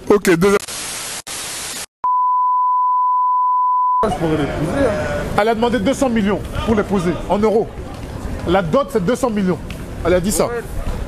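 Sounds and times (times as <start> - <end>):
steady pure test tone beep: 2.0 - 4.1.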